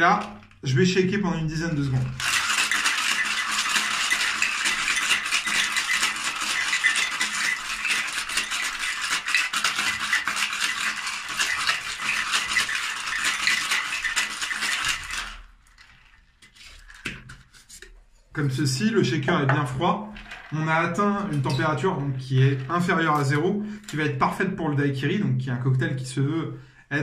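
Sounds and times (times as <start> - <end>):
ice rattling in cocktail shaker: 0.0 - 0.7, 1.3 - 17.3, 19.1 - 24.4.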